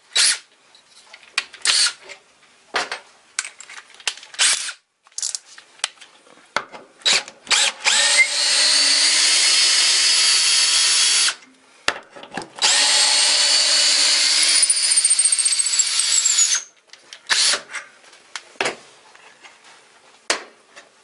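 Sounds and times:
cordless drill driving screw into wood: 0:01.6 - 0:02.0, 0:04.4 - 0:04.8, 0:07.0 - 0:11.4, 0:12.6 - 0:16.7, 0:17.3 - 0:17.7.

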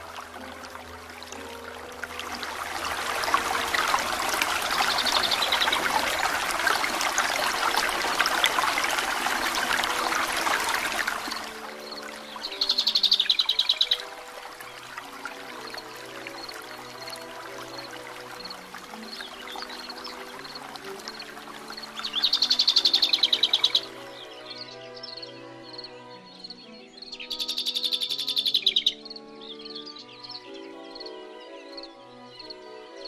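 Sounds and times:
soft background music: 0:00.0 - 0:33.0
songbird trilling: 0:11.2 - 0:15.3, 0:21.8 - 0:31.2.

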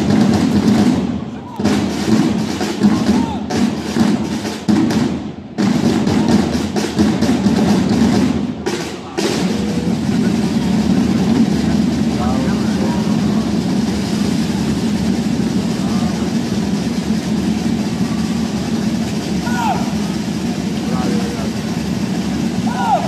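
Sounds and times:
parade drum roll: 0:00.0 - 0:23.0.

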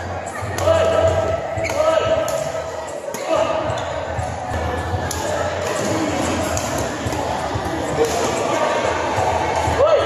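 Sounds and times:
onlookers chatter: 0:00.0 - 0:10.0.

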